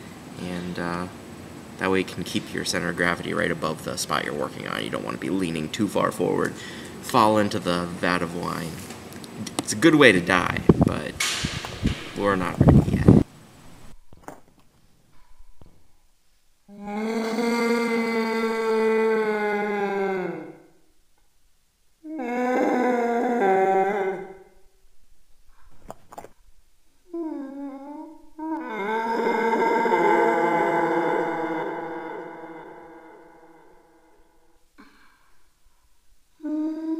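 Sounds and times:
voice holding long notes: 0:16.7 - 0:20.7, 0:22.0 - 0:24.6, 0:27.1 - 0:34.6.

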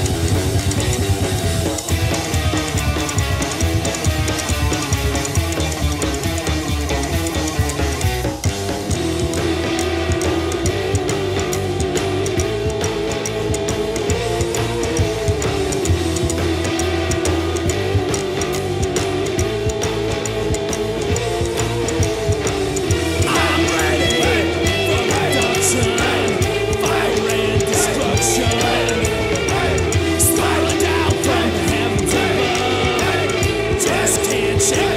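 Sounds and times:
punk rock song: 0:00.0 - 0:34.9.

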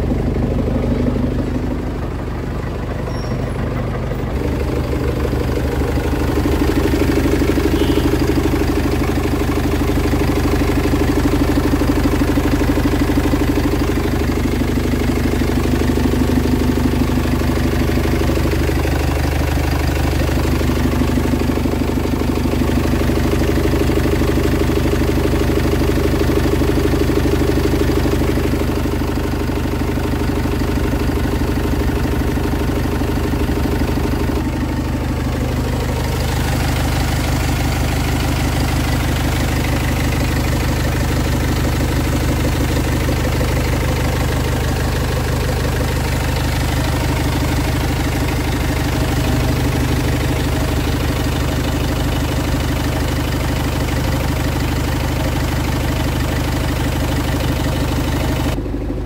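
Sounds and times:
truck engine idling: 0:00.0 - 0:59.0.

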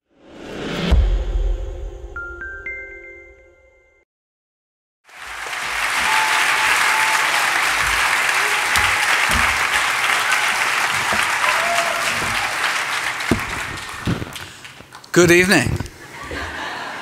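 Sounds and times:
large audience applauding: 0:05.1 - 0:15.7.

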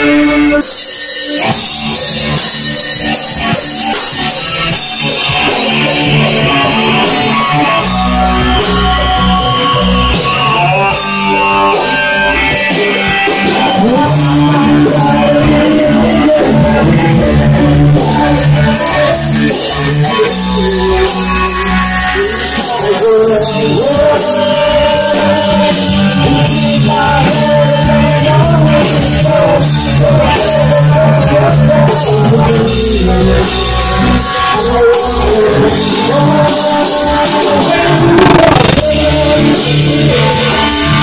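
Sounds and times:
drum kit with crashing cymbals: 0:00.0 - 0:41.0
electric guitar: 0:00.0 - 0:41.0.

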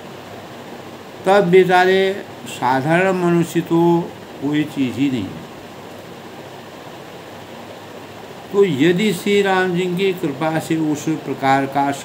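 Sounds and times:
room background hiss: 0:00.0 - 0:12.0.

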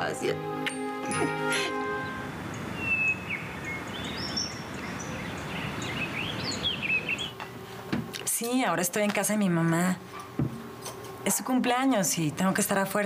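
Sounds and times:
outdoor ambience hiss: 0:00.0 - 0:13.0
birds chirping: 0:01.0 - 0:07.4.

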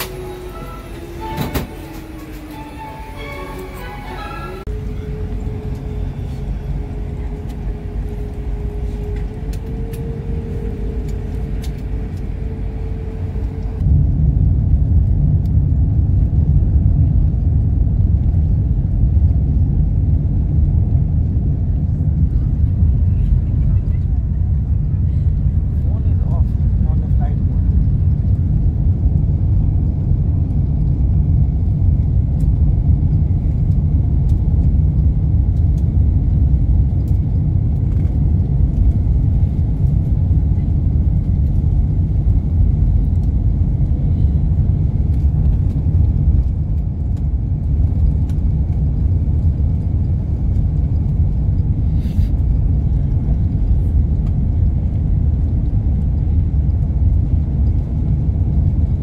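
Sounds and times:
airliner cabin engine rumble: 0:00.0 - 0:59.0.

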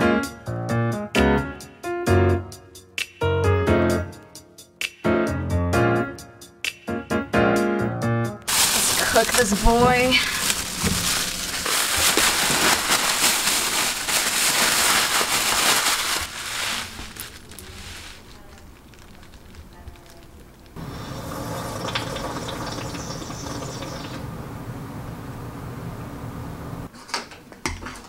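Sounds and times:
plastic bag crinkling: 0:08.5 - 0:20.8
background hum: 0:08.5 - 0:26.9.

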